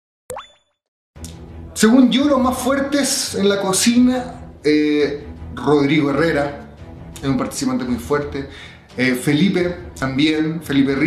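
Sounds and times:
rising bloop sound effect: 0.3 - 0.8
soft background music: 1.2 - 11.0
man talking: 1.8 - 11.0.

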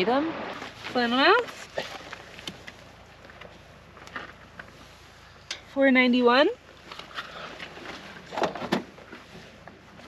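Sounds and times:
light clicks and rustles: 0.6 - 5.8.

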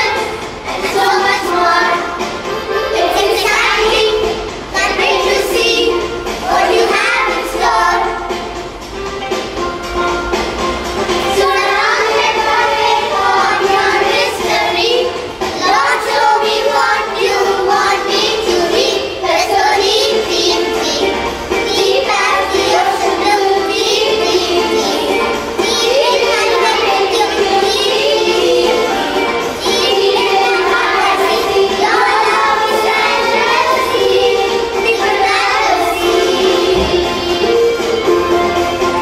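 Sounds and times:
children singing: 0.0 - 39.0
instrumental backing: 0.0 - 39.0.

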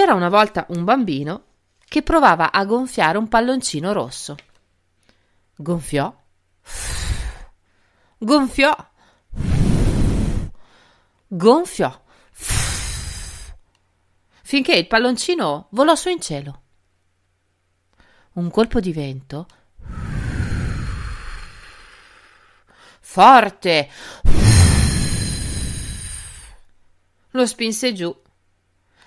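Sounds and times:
person blowing out breath: 6.7 - 7.6, 9.3 - 11.1, 12.4 - 13.6, 19.8 - 22.6, 24.0 - 26.6
low rumble: 24.3 - 26.6.

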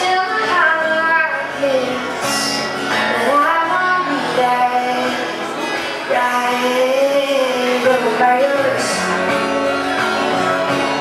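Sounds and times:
woman singing: 0.0 - 9.2
acoustic guitar: 0.0 - 11.0.

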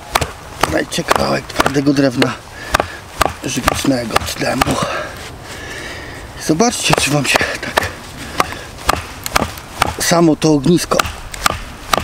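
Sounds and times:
hatchet striking knife spine: 0.0 - 5.0, 6.8 - 10.2, 10.8 - 12.0.

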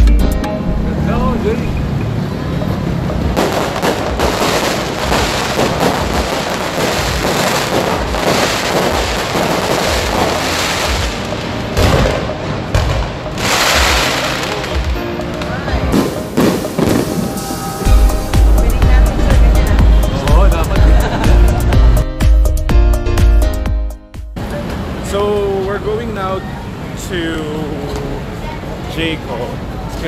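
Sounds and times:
crowd voices: 0.0 - 22.1, 24.4 - 30.0
fireworks booms: 3.3 - 15.0, 15.9 - 19.6
fireworks crackling: 3.3 - 19.0.

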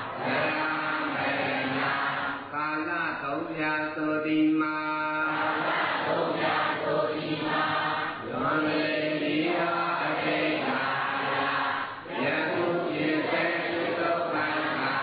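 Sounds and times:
voices chanting together: 0.0 - 2.6, 5.2 - 15.0.

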